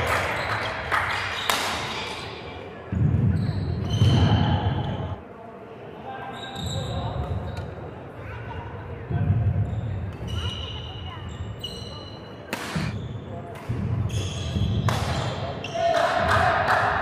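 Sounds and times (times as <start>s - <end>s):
racket hitting shuttlecock: 12.5s - 12.9s.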